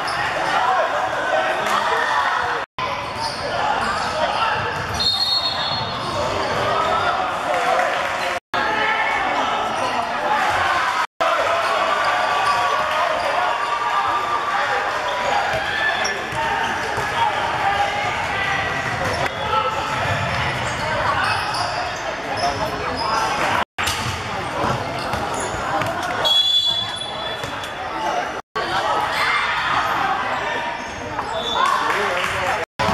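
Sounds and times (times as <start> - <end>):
shouting and chatter: 0.0 - 32.9.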